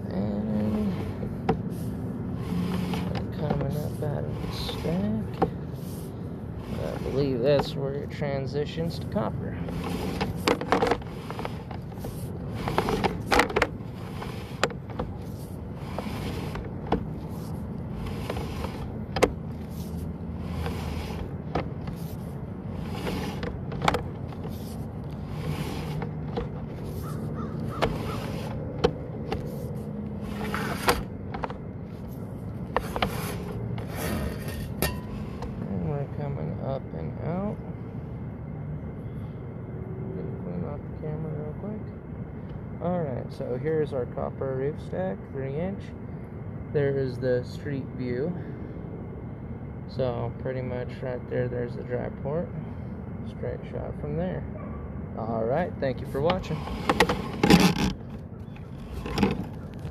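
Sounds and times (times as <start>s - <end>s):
steady low hum: 0.0s - 59.9s
cable knocking and scraping in pipe: 6.6s - 7.9s, 9.6s - 29.6s.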